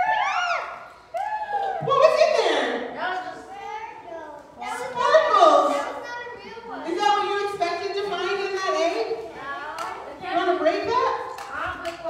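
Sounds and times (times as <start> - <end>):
children exclaiming and chattering: 0.0 - 12.0.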